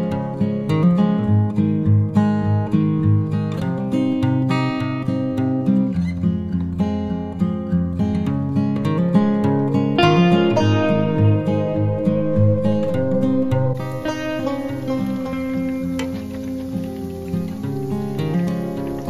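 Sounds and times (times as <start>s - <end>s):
acoustic guitar music: 0.0s - 19.0s.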